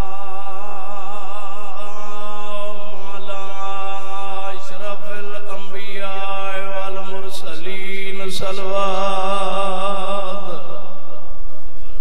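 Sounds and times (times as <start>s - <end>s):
man chanting melodic recitation: 0.0s - 10.5s.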